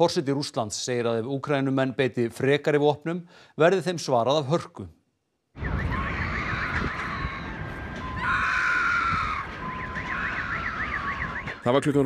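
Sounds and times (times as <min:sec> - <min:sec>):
loud alarm tone: 0:05.6 - 0:11.7
warbling alarm sirens: 0:05.6 - 0:11.9
street noise: 0:05.6 - 0:12.0.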